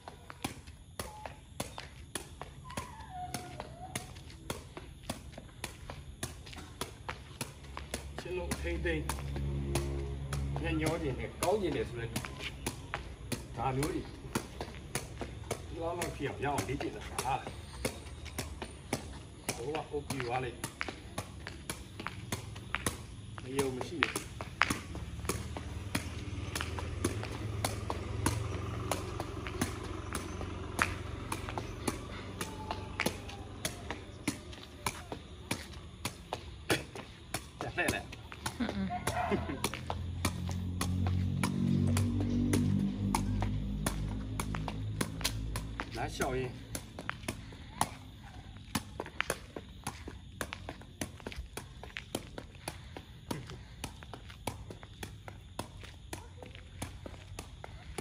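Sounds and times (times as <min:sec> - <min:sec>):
ball kicked sharp taps: 0:00.0 - 0:58.0
footsteps on concrete: 0:00.0 - 0:58.0.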